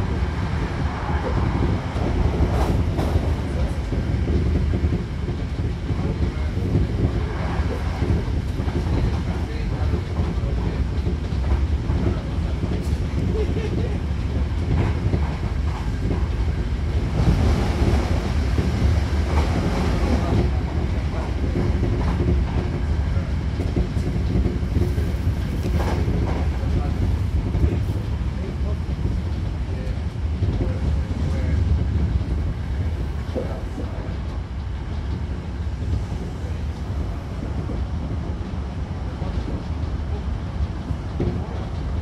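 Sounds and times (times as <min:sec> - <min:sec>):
train rushing noise: 0:00.0 - 0:42.0
train wheels rumbling on rail: 0:00.0 - 0:42.0.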